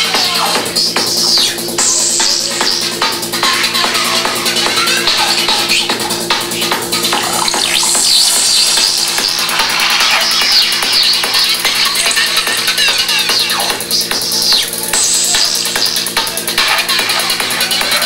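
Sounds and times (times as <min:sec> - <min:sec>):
electronic dance music: 0:00.0 - 0:18.0
warbling synth sweeps: 0:00.7 - 0:18.0.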